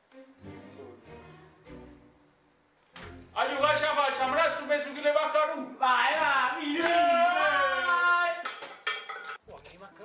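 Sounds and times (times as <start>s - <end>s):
music: 0.0s - 4.9s, 9.4s - 10.0s
metal pot and utensils clattering: 8.4s - 9.8s.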